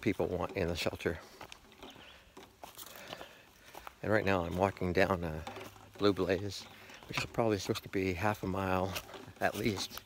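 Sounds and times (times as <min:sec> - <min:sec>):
footsteps on dirt trail: 0:00.0 - 0:10.0.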